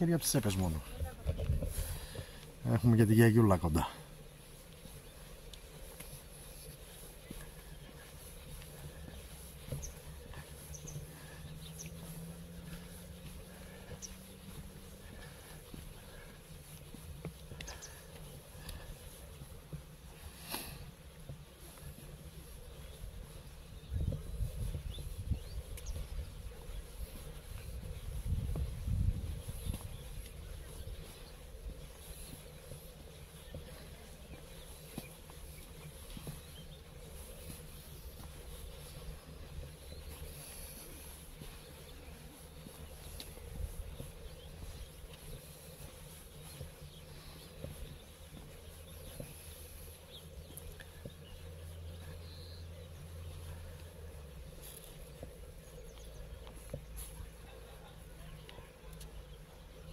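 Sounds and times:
low rumble on microphone: 0.8 - 2.8, 6.1 - 59.9.

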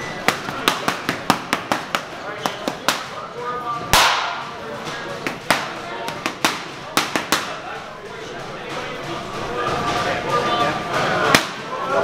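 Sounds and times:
boxing gloves hitting punch paddles: 0.2 - 3.1, 3.9 - 4.5, 5.2 - 7.6.

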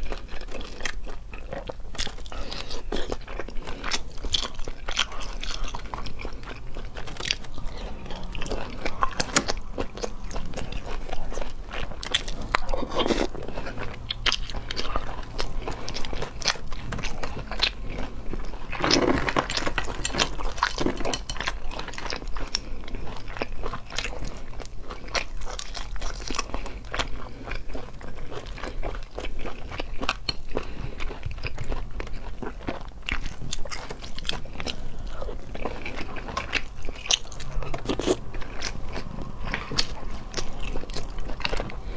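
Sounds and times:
snail shells clicking and crunching: 0.0 - 41.9
wet mouth sounds: 2.2 - 19.2.

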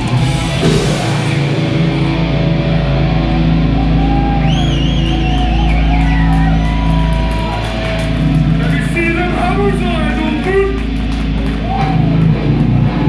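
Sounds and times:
death metal band playing: 0.0 - 13.0.

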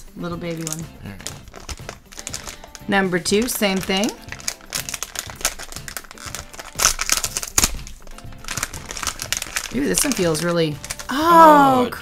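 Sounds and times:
foil bag crinkling and tearing: 0.5 - 11.2.

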